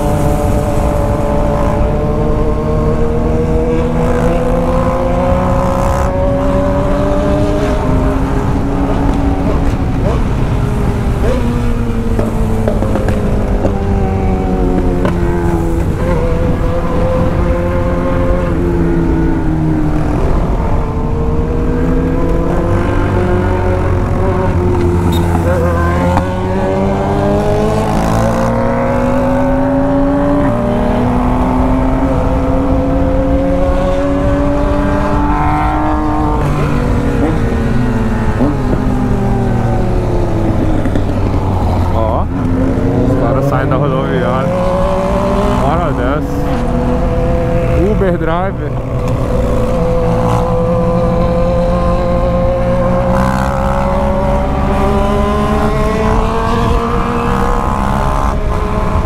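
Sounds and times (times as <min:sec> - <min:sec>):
motorcycle engine revving: 0:00.0 - 0:59.0
wind and road noise: 0:00.0 - 0:59.0.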